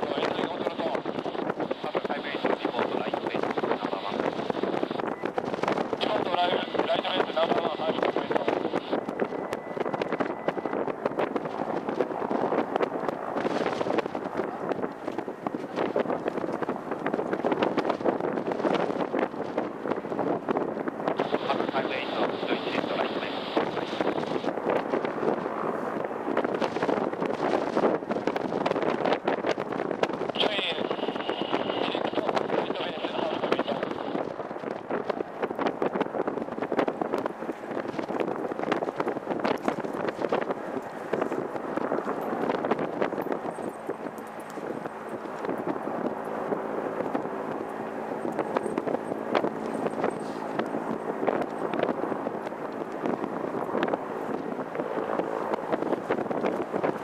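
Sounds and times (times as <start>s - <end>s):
wind on microphone: 0.0s - 57.0s.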